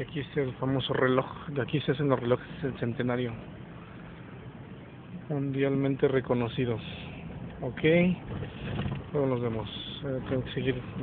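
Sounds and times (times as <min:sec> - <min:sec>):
car cabin hum and road noise: 0:00.0 - 0:11.0.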